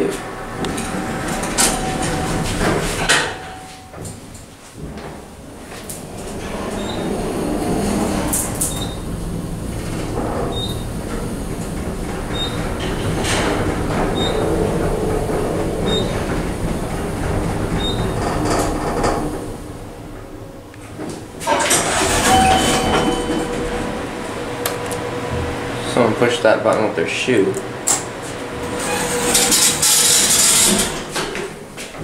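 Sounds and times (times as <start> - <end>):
elevator rumble and hum: 0.0 - 32.0.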